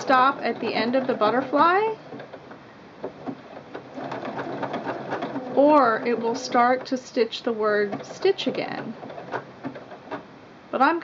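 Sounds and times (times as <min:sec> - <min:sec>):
sewing machine stitching: 0:00.0 - 0:10.2.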